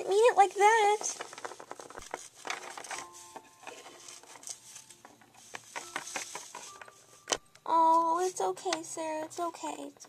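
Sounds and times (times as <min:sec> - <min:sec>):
soft rustling: 0:00.0 - 0:09.1.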